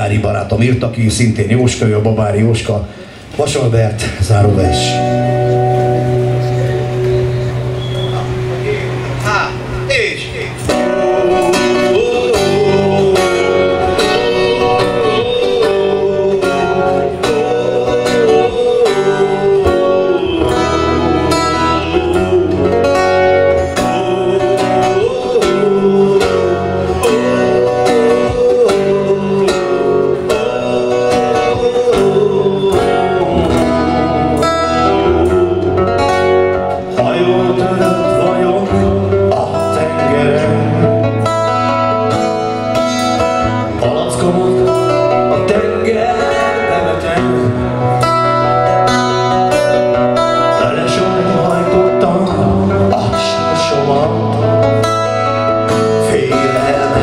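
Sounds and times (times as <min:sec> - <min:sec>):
guitar: 0:00.0 - 0:57.0
man singing: 0:04.2 - 0:07.3, 0:10.1 - 0:57.0.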